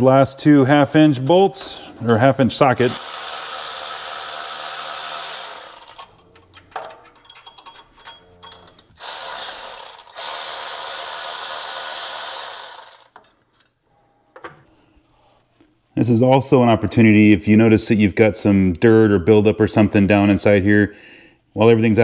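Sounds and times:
electric ratchet whirring: 2.8 - 6.1, 9.0 - 13.2
handling clicks and rattles: 5.8 - 9.0.

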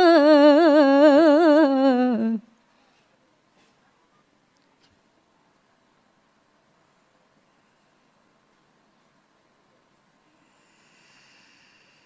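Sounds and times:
woman chanting recitation with vibrato: 0.0 - 2.5.

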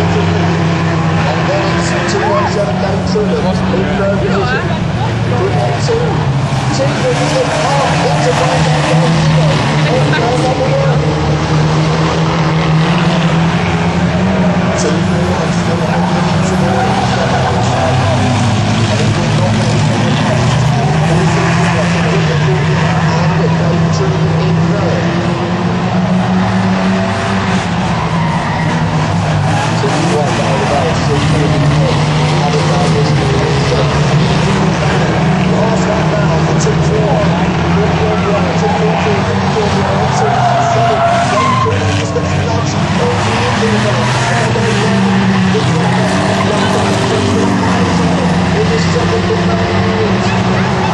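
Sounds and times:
van engines racing: 0.0 - 50.9.

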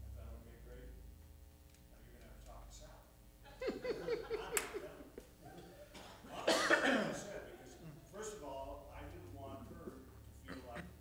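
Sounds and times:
person coughing: 5.9 - 8.0.

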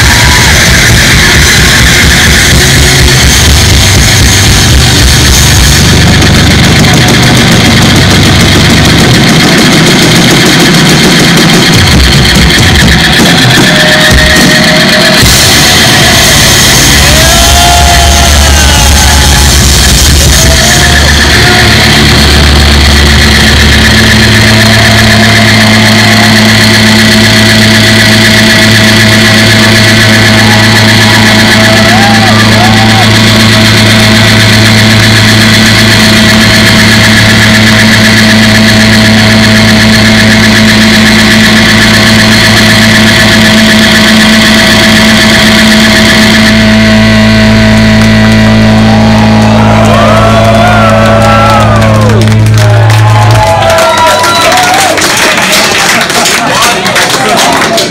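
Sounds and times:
electric guitar feedback drone: 0.0 - 56.4
crowd shouting: 0.0 - 57.9.

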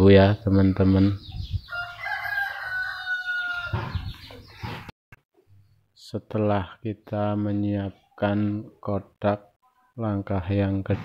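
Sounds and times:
rooster crowing: 1.7 - 4.0.

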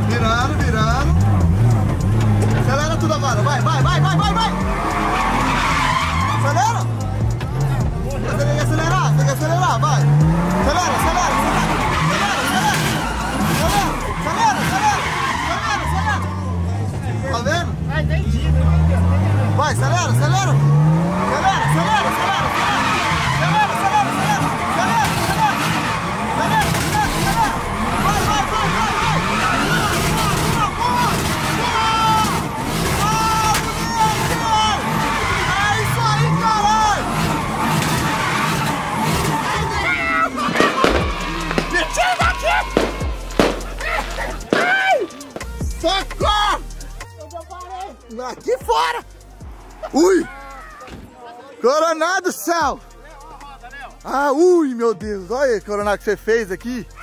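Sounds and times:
car engine revving hard: 0.0 - 44.6
tyres squealing: 0.0 - 55.0, 56.0 - 57.0.

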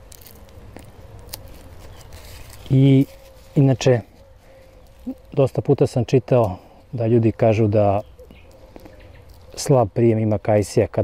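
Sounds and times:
plastic wrap crackling: 0.0 - 5.9, 8.3 - 9.7.

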